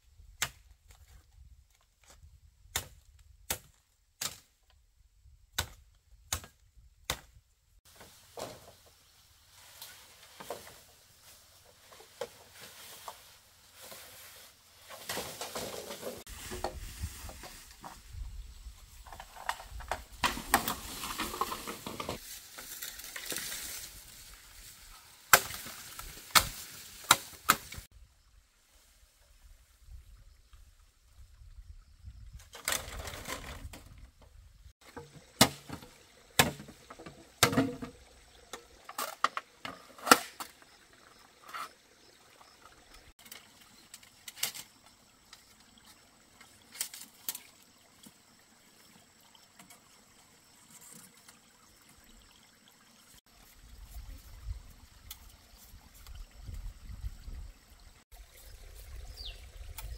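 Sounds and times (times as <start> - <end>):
rustling in dry undergrowth: 7.9 - 27.9
bamboo poles knocking together: 19.0 - 23.8, 25.3 - 27.9, 34.8 - 40.6.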